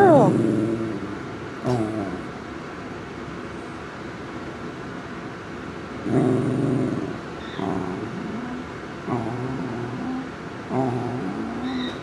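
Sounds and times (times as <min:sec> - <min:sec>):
dog grumbling: 0:00.0 - 0:02.4, 0:06.0 - 0:12.0.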